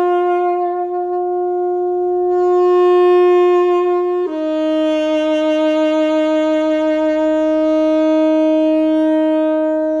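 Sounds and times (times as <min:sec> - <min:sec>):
saxophone long note: 0:00.0 - 0:10.0.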